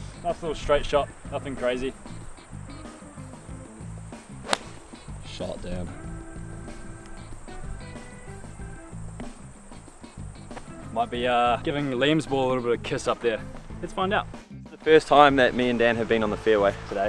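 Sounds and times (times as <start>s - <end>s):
golf club striking ball: 4.2s - 5.5s, 9.0s - 10.8s.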